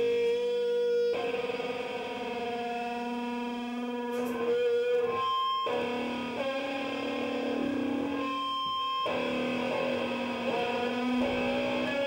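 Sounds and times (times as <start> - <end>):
distorted electric guitar and bass drone: 0.0 - 12.0.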